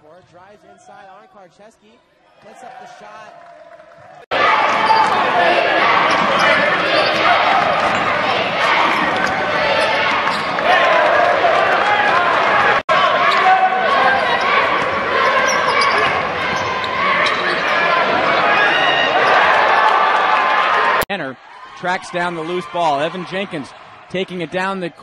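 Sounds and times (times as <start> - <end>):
crowd voices in arena: 0.0 - 25.0.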